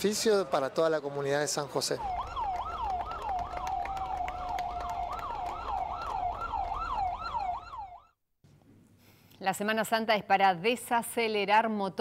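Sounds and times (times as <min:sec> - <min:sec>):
ambulance siren yelping: 0:01.6 - 0:08.2.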